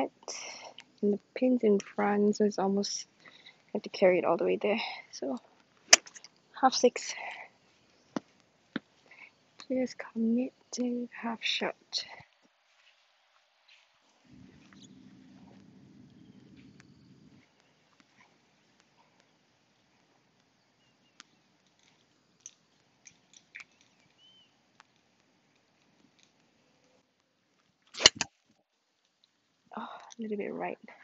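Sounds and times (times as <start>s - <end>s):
faint low hum: 0.0s - 31.0s
faint ticks: 3.1s - 3.8s, 12.0s - 27.8s
golf club striking ball: 28.0s - 28.3s.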